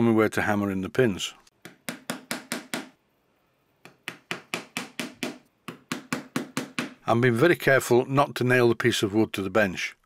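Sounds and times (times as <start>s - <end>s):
hammer tapping nails into wood: 1.6s - 3.0s, 3.8s - 7.0s.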